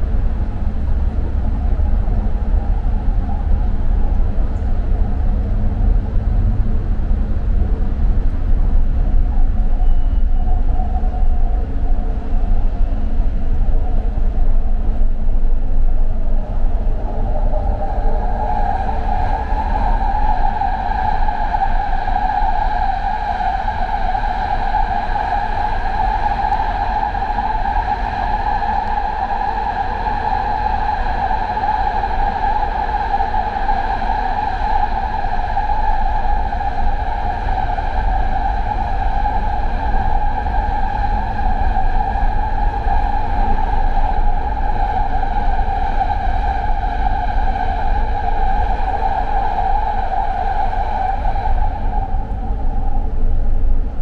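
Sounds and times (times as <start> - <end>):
train high whine: 0.0 - 54.0.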